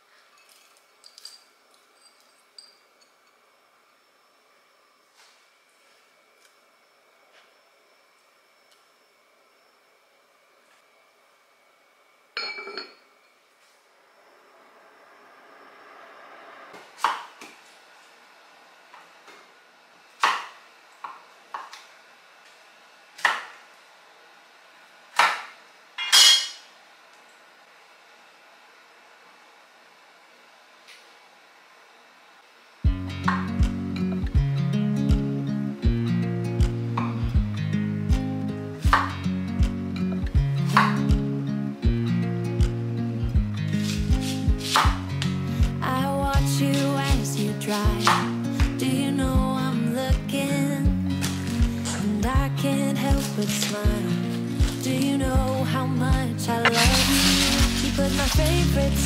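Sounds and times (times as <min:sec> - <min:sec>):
single clink: 0:12.4 - 0:13.1, 0:26.0 - 0:26.7
knife chopping on wooden board: 0:20.2 - 0:21.2, 0:23.2 - 0:23.6, 0:44.2 - 0:45.0, 0:48.0 - 0:48.3
background music with steady beat: 0:32.8 - 0:59.0.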